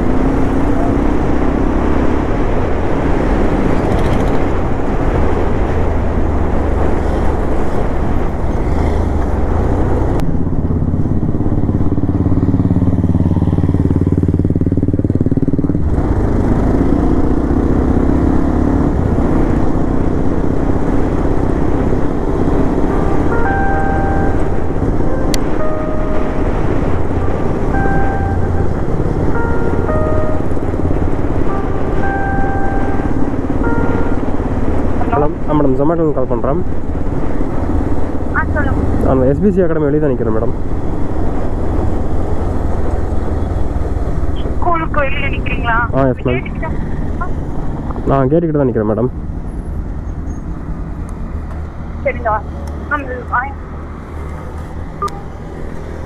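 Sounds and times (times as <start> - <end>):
wind noise on microphone: 0.0 - 11.9
motorcycle engine running: 3.4 - 4.8, 8.4 - 35.7.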